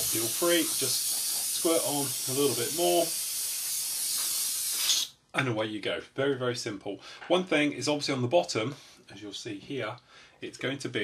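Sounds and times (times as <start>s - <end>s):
sprayer hissing: 0.0s - 5.1s.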